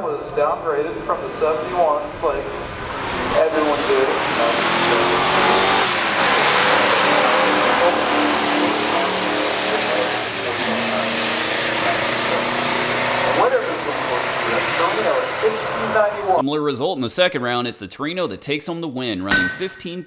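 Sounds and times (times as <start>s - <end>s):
car engines at full throttle: 0.3s - 16.4s.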